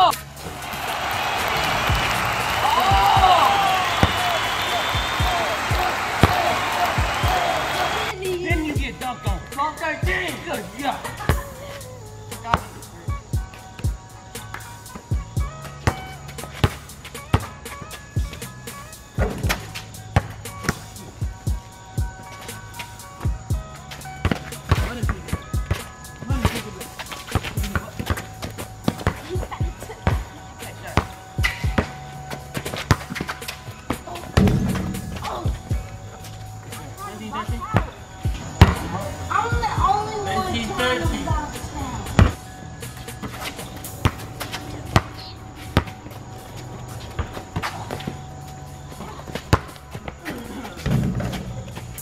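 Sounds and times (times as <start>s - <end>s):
background music with steady beat: 0.0s - 52.0s
basketball bouncing on concrete: 2.8s - 7.5s, 12.4s - 18.4s, 19.2s - 21.5s, 24.1s - 36.2s, 37.3s - 42.5s, 43.2s - 48.2s, 49.0s - 52.0s.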